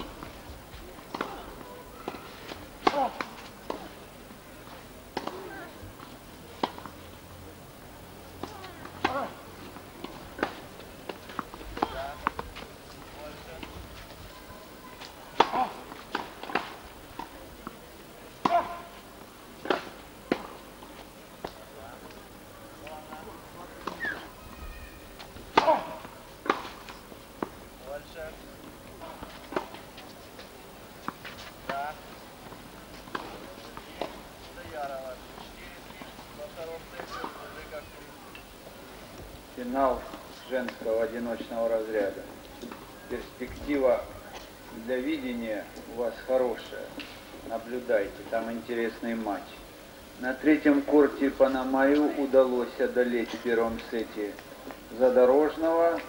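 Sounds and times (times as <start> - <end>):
faint voices chattering: 0.0 - 56.0
tennis balls struck by rackets: 1.0 - 4.0, 5.1 - 7.0, 8.3 - 12.7, 15.3 - 17.8, 18.4 - 18.9, 19.6 - 20.7, 25.4 - 29.8, 31.0 - 35.1.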